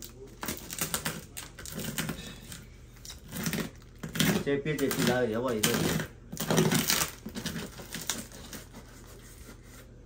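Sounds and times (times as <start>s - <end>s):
knife slitting packing tape: 0.0s - 9.2s.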